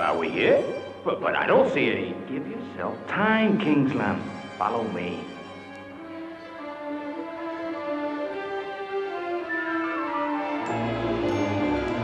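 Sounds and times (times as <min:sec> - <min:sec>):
orchestral string music: 0:00.0 - 0:12.0.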